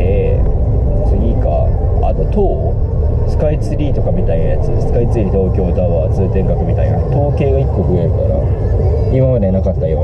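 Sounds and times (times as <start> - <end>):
car engine rumble: 0.0 - 10.0
man talking: 0.0 - 10.0
road noise: 0.0 - 10.0.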